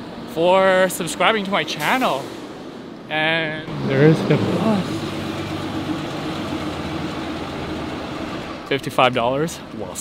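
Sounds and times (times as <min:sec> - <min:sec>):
bus engine humming: 0:00.0 - 0:10.0.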